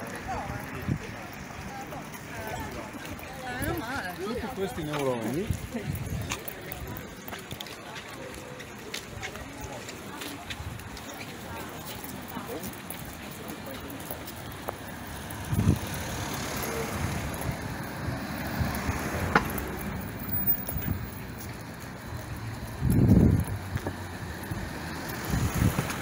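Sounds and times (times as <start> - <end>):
road traffic passing: 0.0 - 26.0.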